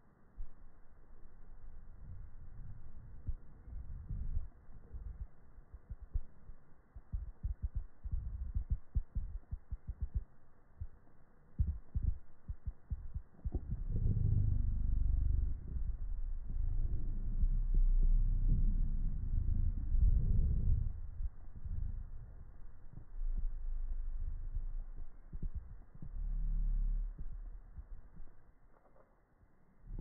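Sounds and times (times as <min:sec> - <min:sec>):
low rumble of handling noise: 0:00.0 - 0:30.0.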